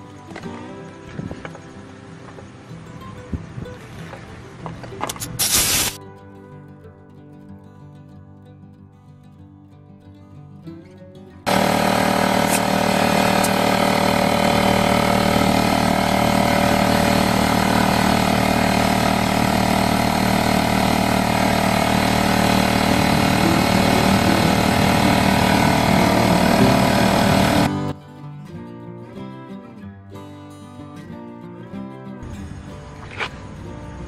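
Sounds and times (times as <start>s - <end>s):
air compressor running: 5.1s - 6.0s, 11.5s - 27.7s.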